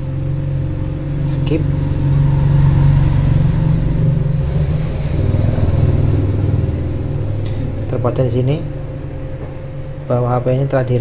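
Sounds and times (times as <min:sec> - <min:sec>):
low motor rumble: 0:00.0 - 0:11.0.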